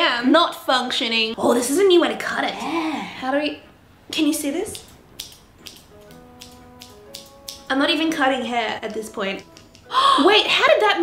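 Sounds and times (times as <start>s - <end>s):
soft background music: 1.3s - 11.0s
scissors snipping hair: 4.7s - 7.9s, 8.9s - 9.9s.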